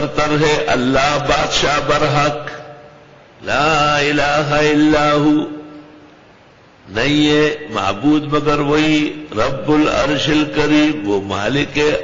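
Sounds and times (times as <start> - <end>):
man chanting melodic recitation: 0.0 - 6.0, 6.8 - 12.0.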